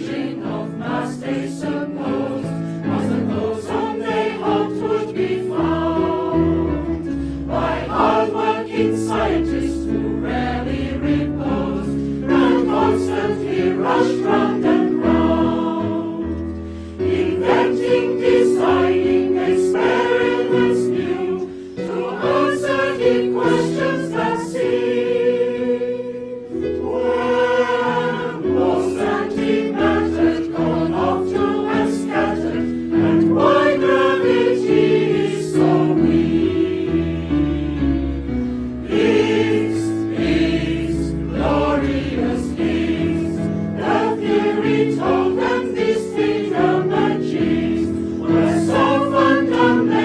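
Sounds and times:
choir singing slow chords: 0.0 - 50.0.

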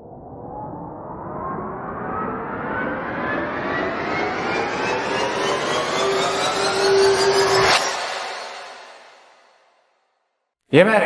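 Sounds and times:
tones sliding upward in pitch: 0.0 - 9.1
rising rush of noise: 0.0 - 9.4.

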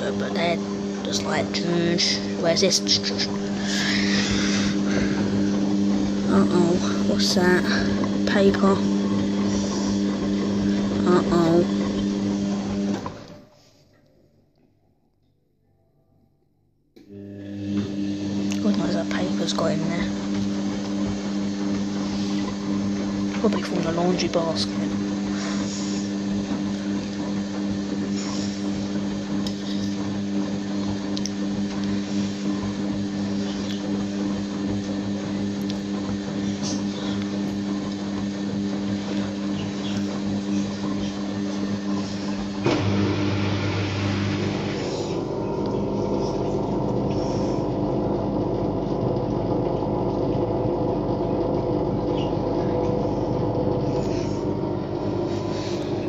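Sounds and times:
washing machine running: 0.0 - 13.6, 17.0 - 56.0.

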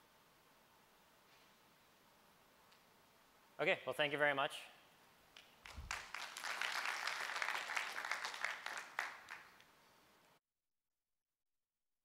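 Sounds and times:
audience applauding: 5.6 - 9.6.

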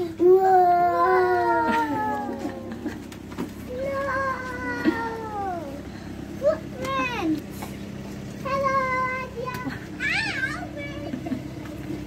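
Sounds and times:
child crying out: 0.4 - 3.0, 3.7 - 5.8.

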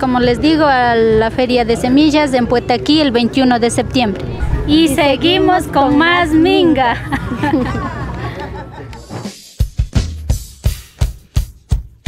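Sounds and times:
drum kit beat: 9.1 - 12.0.

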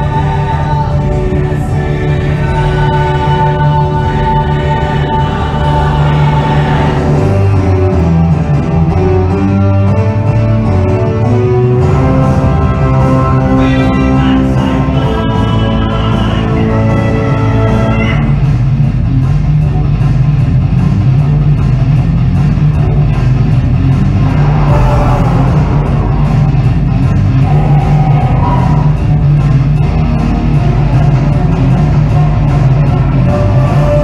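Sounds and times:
orchestra playing: 0.8 - 15.6, 23.9 - 27.9.

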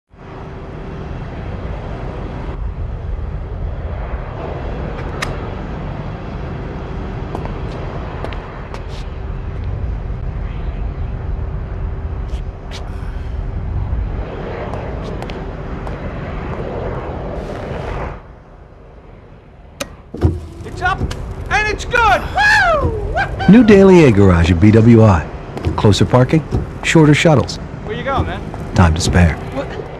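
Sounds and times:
low rumbling ambience: 0.1 - 29.9.

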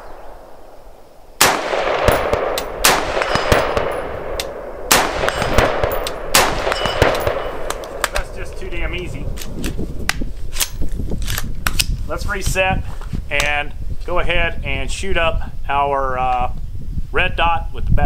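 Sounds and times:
rifle shots with echo: 1.4 - 9.5.

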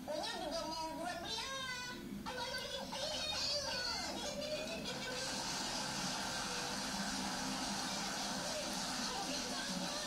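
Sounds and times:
audience applauding: 5.4 - 10.0.

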